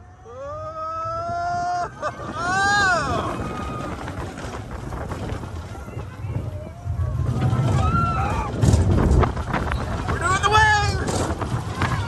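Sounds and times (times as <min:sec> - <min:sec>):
low rumble: 0:00.0 - 0:12.0
roller coaster on track: 0:00.0 - 0:12.0
wind buffeting microphone: 0:00.0 - 0:12.0.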